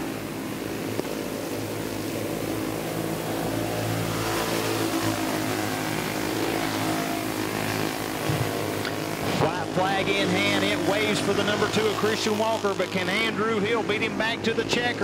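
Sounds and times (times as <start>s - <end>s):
go-kart engines racing: 0.0s - 15.0s.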